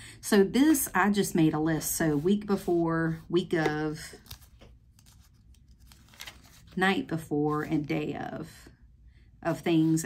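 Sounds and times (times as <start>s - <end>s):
paper page rustling: 3.6s - 7.9s.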